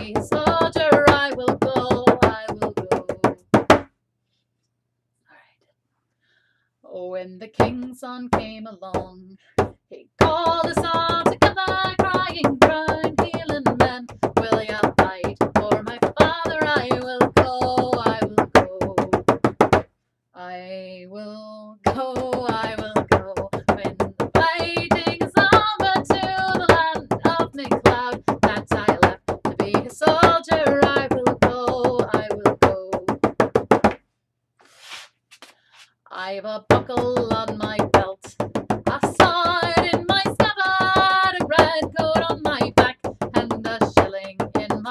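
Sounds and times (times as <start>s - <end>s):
woman singing: 0.0s - 3.4s, 6.9s - 19.4s, 20.4s - 33.3s, 36.1s - 44.9s.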